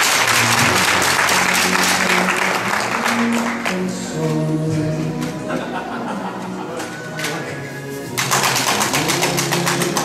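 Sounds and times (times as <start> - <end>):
hands clapping: 0.0 - 4.4, 6.8 - 10.0.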